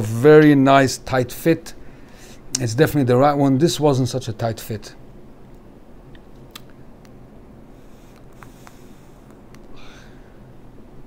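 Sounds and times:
steady low hum: 0:00.0 - 0:11.0
soft breath-like hiss: 0:01.8 - 0:02.5, 0:07.7 - 0:10.5.

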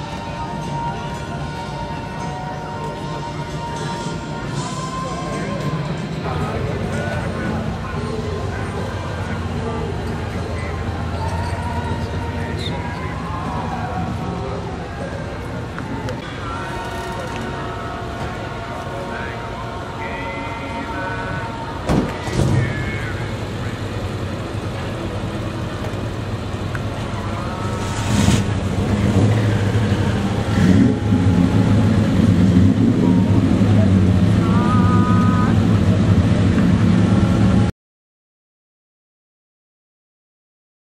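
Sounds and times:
people talking: 0:00.0 - 0:37.7
car engine running: 0:21.6 - 0:37.7.

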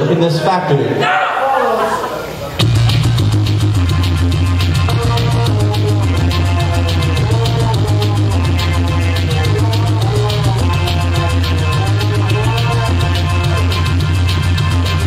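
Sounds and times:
heavy synth bass line: 0:01.5 - 0:15.0
keyboard melody: 0:01.5 - 0:15.0
fast steady beat: 0:02.0 - 0:15.0.

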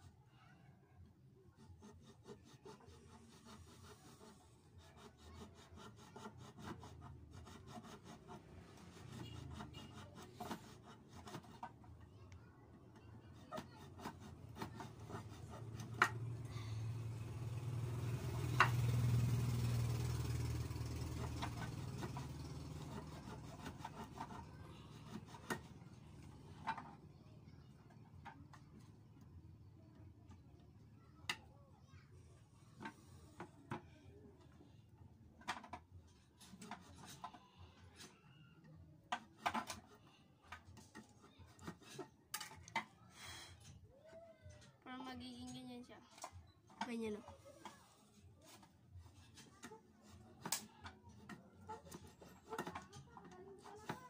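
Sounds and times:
knife scraping plastic: 0:01.5 - 0:12.0, 0:13.0 - 0:16.4, 0:21.0 - 0:27.0, 0:35.4 - 0:37.4, 0:39.1 - 0:42.9, 0:46.1 - 0:54.0.

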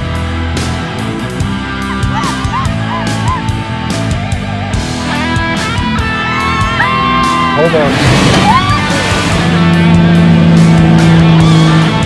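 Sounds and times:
drums: 0:00.0 - 0:12.0.

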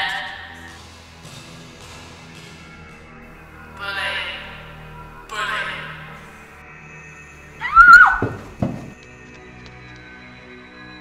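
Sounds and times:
loud high-pitched cry: 0:07.6 - 0:08.5
short low thuds: 0:08.1 - 0:09.0.

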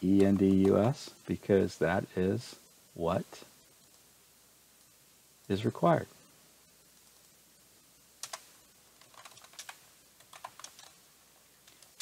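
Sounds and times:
typing on computer keyboard: 0:08.2 - 0:11.0, 0:11.6 - 0:12.0.

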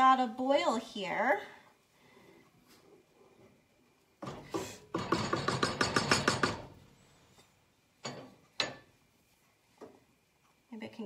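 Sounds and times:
spoon knocking against a pot: 0:04.9 - 0:06.7.

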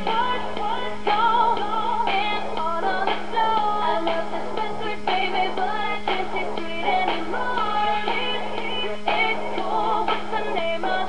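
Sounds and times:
pop song from small speaker: 0:00.0 - 0:11.0.

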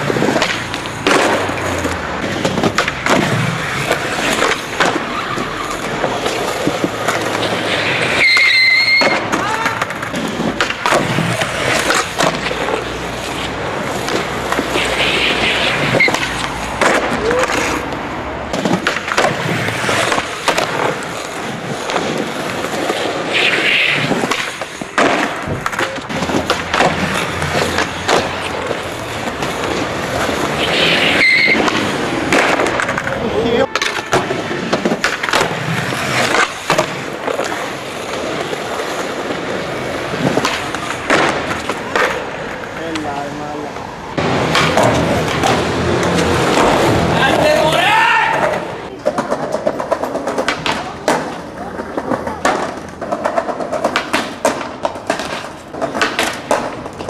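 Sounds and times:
skateboard clacks on concrete: 0:00.0 - 0:57.0
skateboard wheels rolling on pavement: 0:00.0 - 0:57.0.

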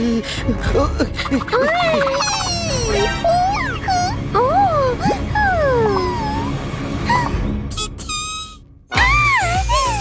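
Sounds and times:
background music: 0:00.0 - 0:10.0
cartoon mouse whimpering squeaks: 0:01.6 - 0:04.2, 0:07.8 - 0:10.0.

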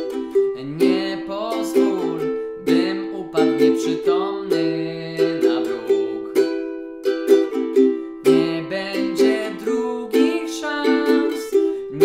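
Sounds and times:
ukulele strumming: 0:00.0 - 0:12.0
man singing: 0:00.3 - 0:06.7, 0:08.2 - 0:12.0.

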